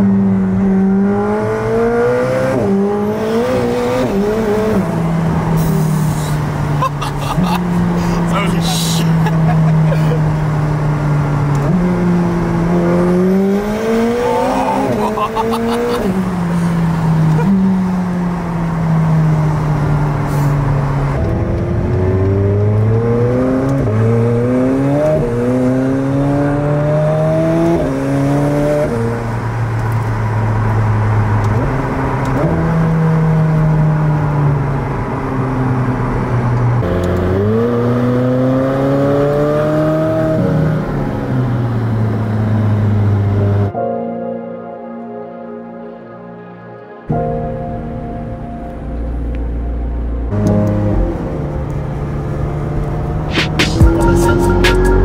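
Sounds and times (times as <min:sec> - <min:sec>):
car engine accelerating through gears: 0:00.0 - 0:43.7, 0:48.7 - 0:55.0.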